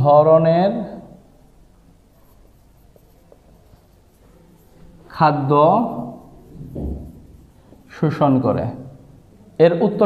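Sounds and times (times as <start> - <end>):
marker pen writing on whiteboard: 1.7 - 8.4.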